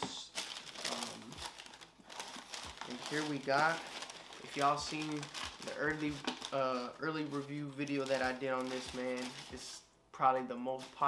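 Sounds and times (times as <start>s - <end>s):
paper crinkling: 0.0s - 9.7s, 10.7s - 11.0s.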